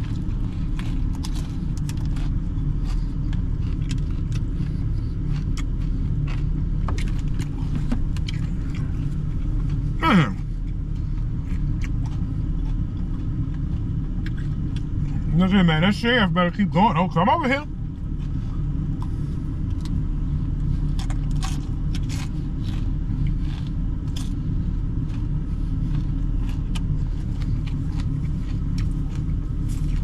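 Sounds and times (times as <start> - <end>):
eating crunches: 0.0 - 15.3, 17.8 - 30.0
truck engine idling: 0.0 - 20.9.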